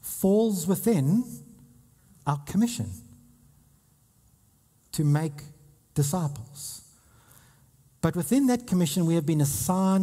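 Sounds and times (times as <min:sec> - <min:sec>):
man speaking: 0:00.0 - 0:01.6, 0:02.2 - 0:03.2, 0:04.9 - 0:06.9, 0:08.0 - 0:10.0.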